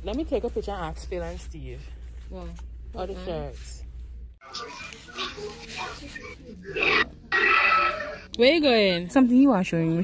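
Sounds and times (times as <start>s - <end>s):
person's voice through phone speaker: 4.4s - 7.1s.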